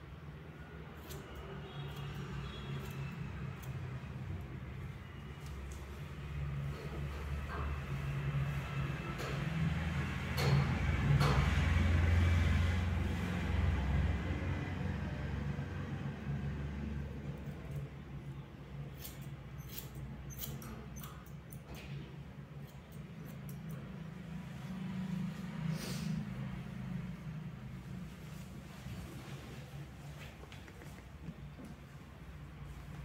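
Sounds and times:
scissors snipping hair: 1.0s - 1.4s, 18.9s - 21.7s.

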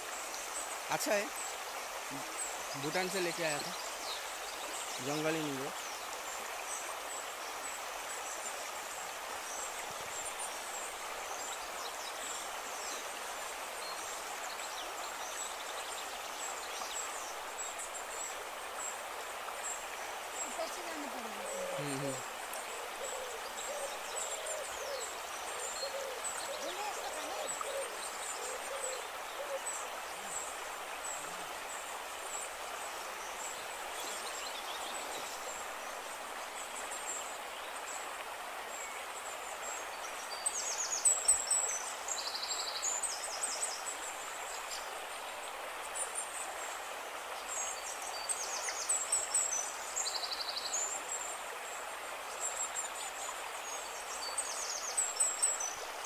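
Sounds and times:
stream flowing over stones: 0.0s - 56.0s
short low calls: 20.8s - 22.3s.

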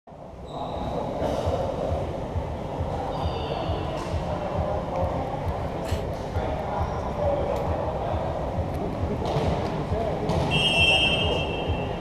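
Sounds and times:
rumbling din of sports hall: 0.1s - 12.0s.

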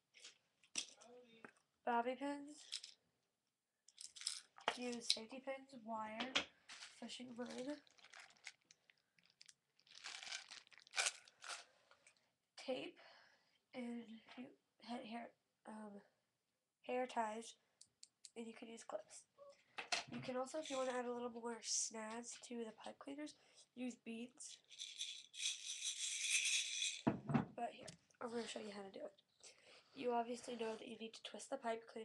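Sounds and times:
beads rattling: 3.9s - 4.6s, 6.7s - 11.6s, 20.6s - 21.0s, 24.5s - 27.1s
craft supplies crinkling: 6.7s - 12.0s.

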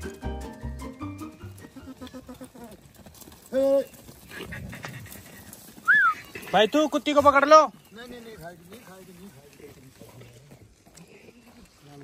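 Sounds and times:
background music: 0.0s - 2.0s
goat bleat: 1.6s - 2.8s
short whistle: 5.8s - 6.2s.

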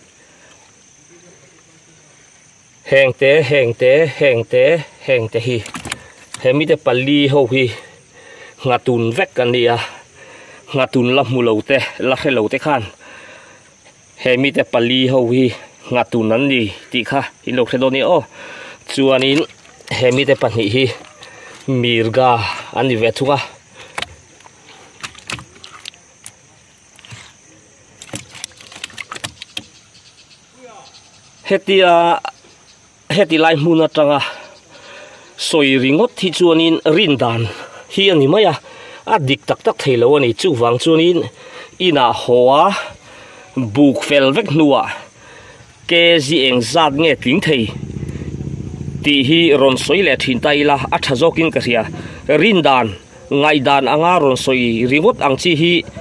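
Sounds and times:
sharp clicks and light knocks: 5.6s - 6.5s, 28.0s - 29.7s
high-pitched insect drone: 45.8s - 56.0s
man speaking loudly: 45.9s - 47.8s, 49.0s - 56.0s.

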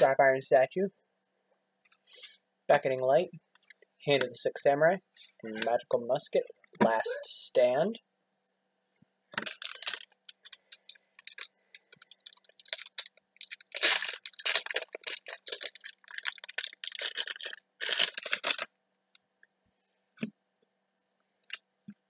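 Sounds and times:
plastic wrapping crinkling: 9.4s - 18.7s.

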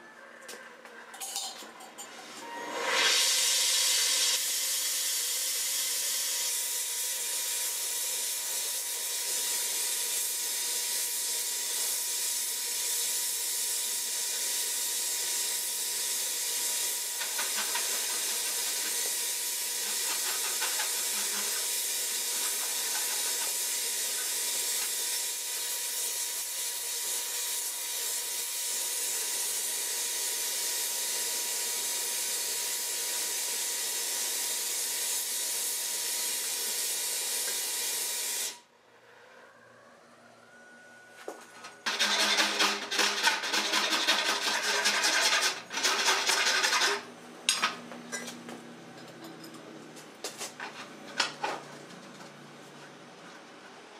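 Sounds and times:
torch flame hissing: 14.0s - 25.6s.

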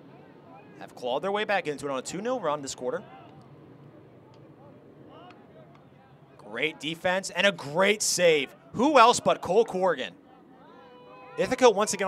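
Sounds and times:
low field ambience hum: 0.0s - 12.0s
distant players shouting: 3.0s - 12.0s.

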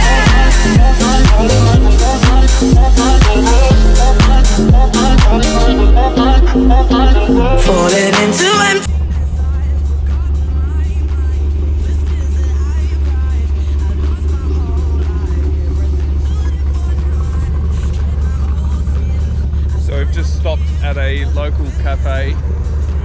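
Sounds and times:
steady low rumble: 0.0s - 7.8s, 8.9s - 23.0s
man talking: 19.8s - 22.5s.

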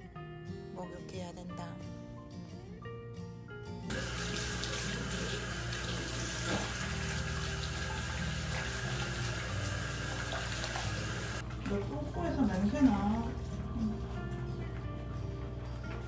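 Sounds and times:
tap water splashing into basin: 3.9s - 13.2s.

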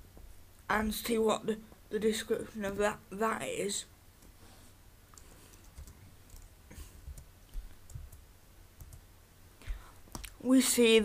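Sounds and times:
computer keyboard typing clicks: 5.2s - 6.5s.

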